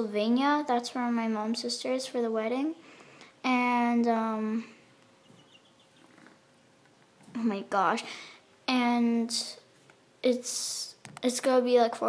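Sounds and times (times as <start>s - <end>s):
chicks peeping: 5.0s - 6.4s.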